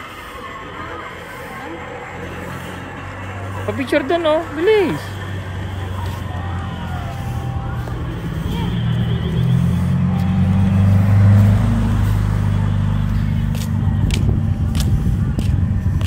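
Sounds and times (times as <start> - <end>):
car driving past: 0.0 - 14.0.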